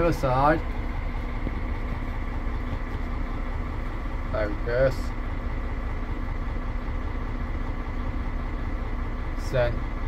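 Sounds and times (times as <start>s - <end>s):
engine idling: 0.0s - 10.0s
faint constant hum: 0.0s - 10.0s.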